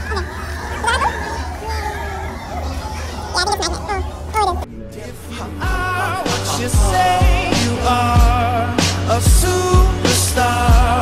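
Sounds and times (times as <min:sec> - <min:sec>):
children's voices: 0:00.0 - 0:04.7, 0:05.9 - 0:07.8
people chattering: 0:00.0 - 0:09.2.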